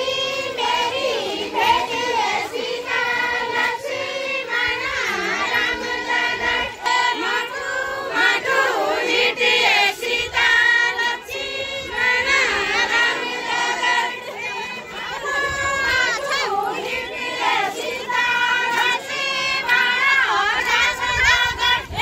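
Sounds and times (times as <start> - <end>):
women singing folk song in chorus: 0.0 - 22.0.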